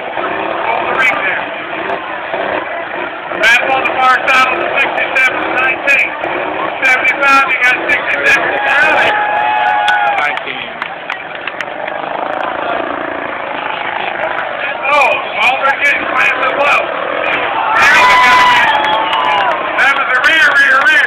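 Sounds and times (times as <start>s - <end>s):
car engines running: 0.0s - 21.0s
crowd din: 0.0s - 21.0s.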